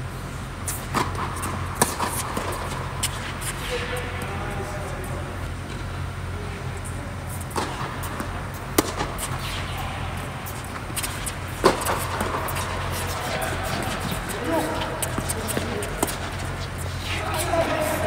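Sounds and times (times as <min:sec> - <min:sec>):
tennis balls bouncing: 0:00.7 - 0:04.3, 0:07.4 - 0:18.0
tennis balls struck by rackets: 0:00.9 - 0:04.3, 0:07.4 - 0:18.0.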